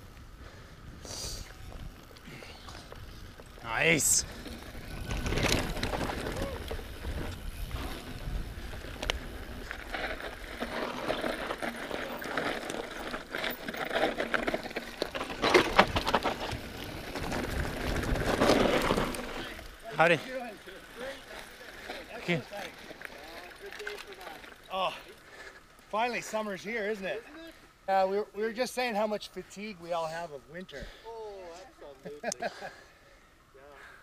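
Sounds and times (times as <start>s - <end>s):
wind rumbling on microphone: 0.0s - 19.8s
bike rattling over bumps: 1.4s - 27.2s
tyres on dirt and rock: 1.5s - 32.7s.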